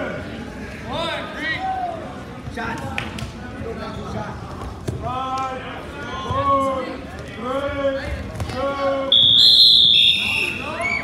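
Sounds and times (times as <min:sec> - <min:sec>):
referee's whistle blast: 0:09.1 - 0:11.0.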